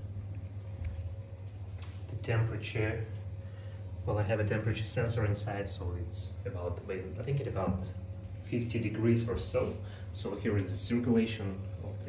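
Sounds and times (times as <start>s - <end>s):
mining rig low hum: 0.0s - 12.0s.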